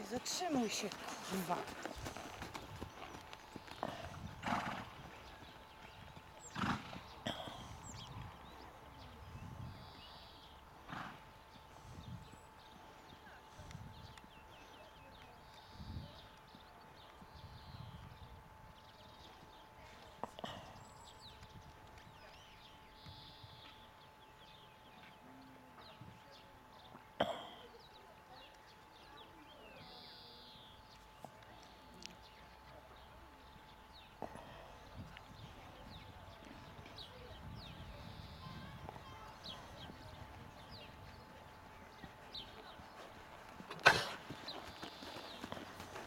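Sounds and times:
horse hooves thudding in sand: 0.0 - 9.2, 34.2 - 46.0.

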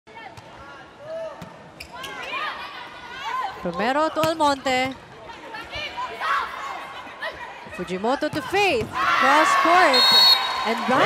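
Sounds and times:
crowd voices: 1.9 - 11.0.

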